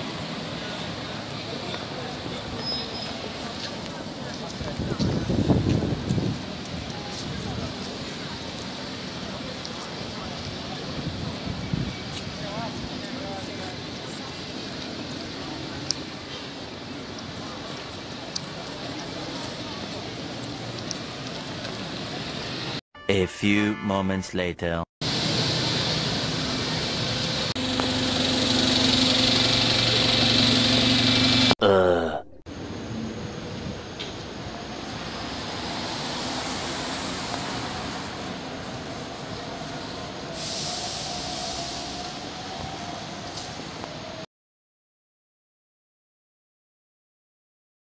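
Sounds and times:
bus engine and tyres: 0.0s - 22.8s, 25.0s - 31.6s, 32.5s - 44.3s
traffic hum: 0.0s - 22.8s, 25.0s - 31.9s, 32.5s - 44.2s
loud hiss: 40.4s - 42.2s.

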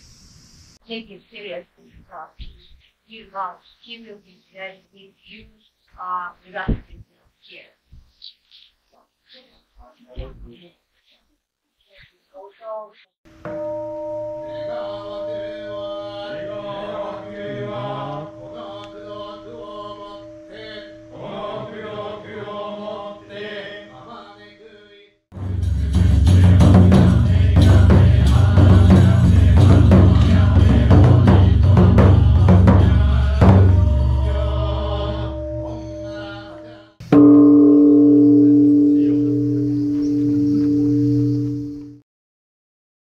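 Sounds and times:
steady held tone: 13.3s - 23.2s, 26.4s - 42.0s
bowl bell ringing: 13.5s - 21.2s, 33.7s - 42.0s
man chanting: 14.5s - 37.1s, 38.2s - 40.4s.

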